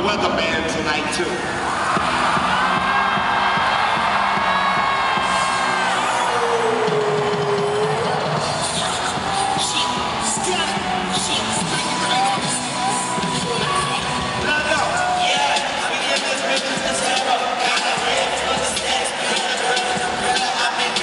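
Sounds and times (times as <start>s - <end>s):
hip-hop music over sound system: 0.0s - 21.0s
crowd cheering and whooping: 1.4s - 21.0s.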